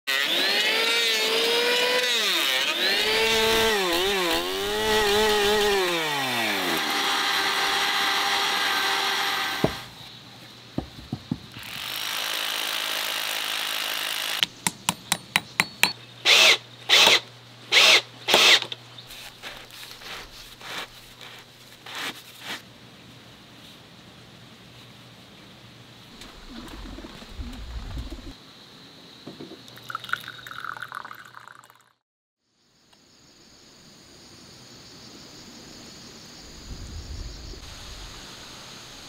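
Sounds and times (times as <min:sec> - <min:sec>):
electric planer cutting wood: 0:00.1 - 0:09.9
wooden knocks: 0:10.8 - 0:11.6.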